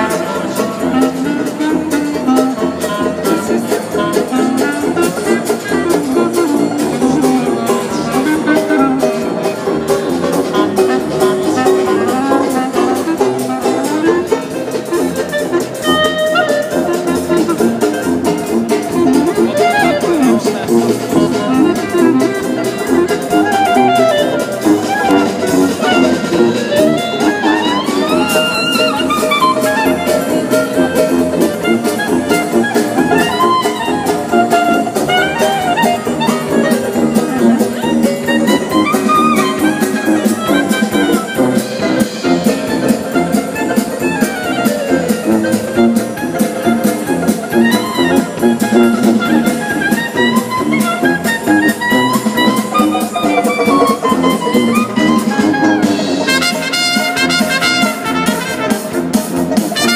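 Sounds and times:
dixieland jazz band playing: 0.0 - 59.9.

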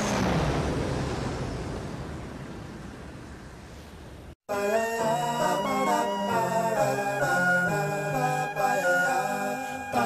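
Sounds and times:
rushing wind-like noise: 0.0 - 4.4.

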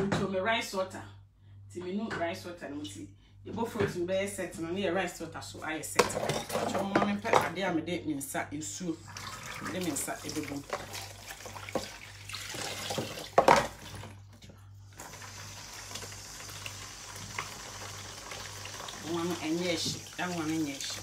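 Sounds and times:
tap water running into sink: 9.2 - 14.1, 15.0 - 21.0.

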